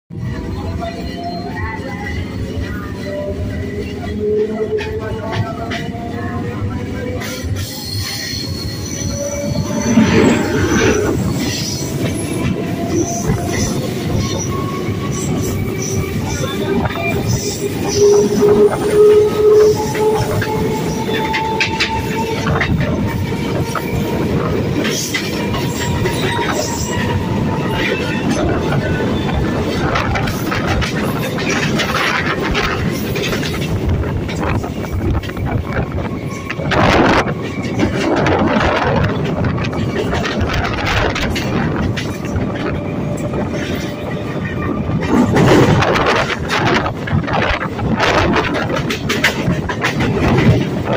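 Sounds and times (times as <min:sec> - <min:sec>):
train rushing rumble: 0:00.1 - 0:50.9
rushing air: 0:08.7 - 0:12.5
wheels clacking over rail joints: 0:09.6 - 0:50.9.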